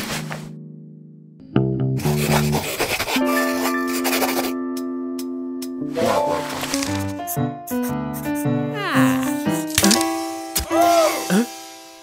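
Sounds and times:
pencil scratching on paper: 0:02.0 - 0:04.6
cartoon music: 0:05.9 - 0:06.7, 0:07.7 - 0:10.0.

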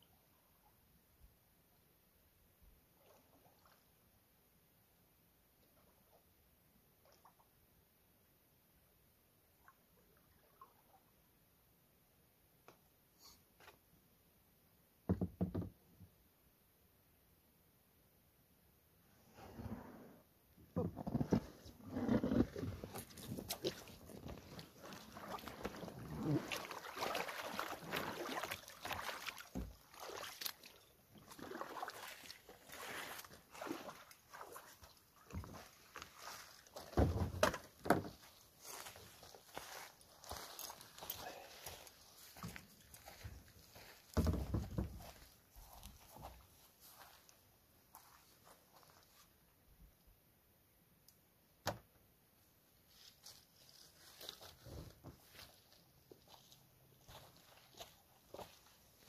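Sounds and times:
kayak and paddles knocking: 0:15.1 - 0:15.8.

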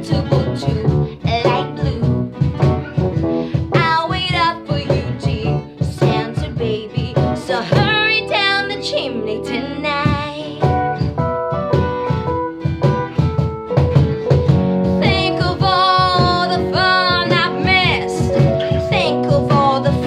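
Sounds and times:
woman singing: 0:00.0 - 0:02.5, 0:03.5 - 0:10.8, 0:14.9 - 0:20.0
acoustic guitars: 0:00.0 - 0:20.0.

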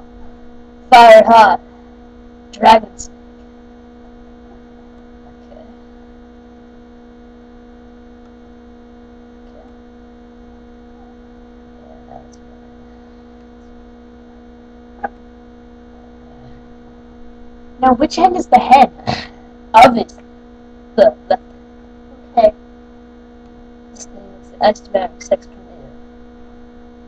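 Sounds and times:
steady electrical hum: 0:00.0 - 0:27.0.

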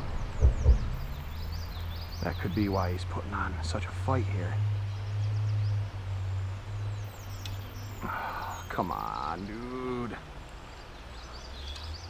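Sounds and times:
high bird chirps: 0:00.0 - 0:02.8
steady low rumble: 0:00.0 - 0:10.5.

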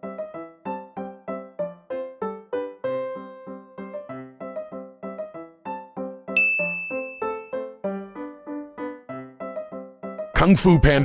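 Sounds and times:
quick keyboard notes music: 0:00.0 - 0:11.0
bright bell-like ding: 0:06.4 - 0:07.6.

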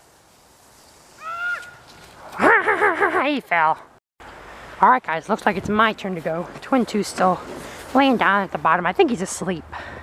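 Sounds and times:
faint outdoor hiss: 0:00.0 - 0:10.0
child shouting in distance: 0:01.2 - 0:01.8.

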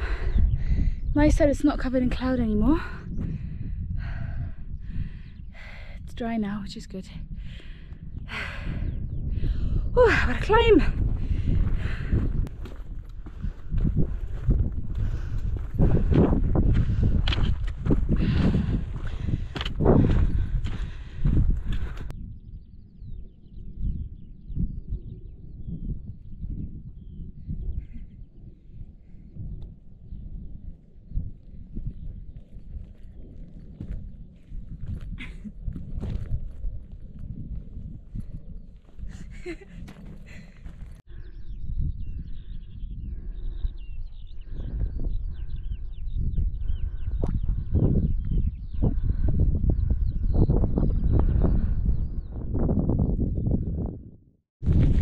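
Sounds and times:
dull wind rumble: 0:00.0 - 0:55.0
wind buffeting microphone: 0:00.0 - 0:55.0.

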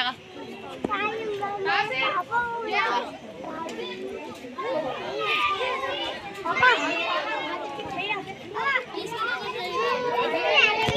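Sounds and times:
children talking and calling out: 0:00.0 - 0:10.9.

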